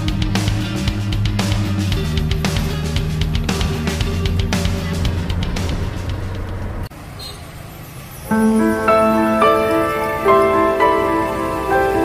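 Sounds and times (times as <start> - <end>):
auto rickshaw engine drone: 0.0 - 12.0
road noise: 0.0 - 12.0
street traffic noise: 0.0 - 12.0.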